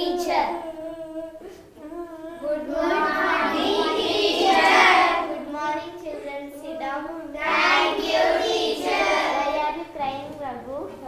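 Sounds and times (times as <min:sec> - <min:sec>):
children chanting in unison: 0:02.4 - 0:05.6, 0:07.3 - 0:09.8.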